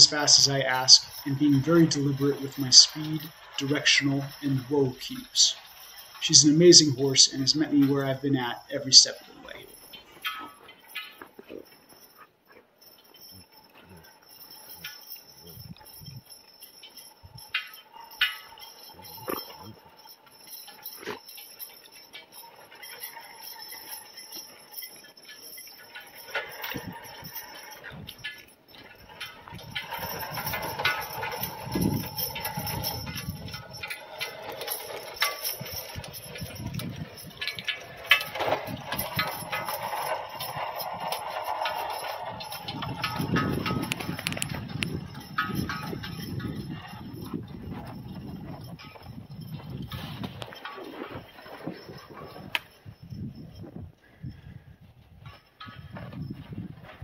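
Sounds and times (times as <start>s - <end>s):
harness jingling: 0.0s - 57.0s
sled runners on snow: 29.0s - 53.1s.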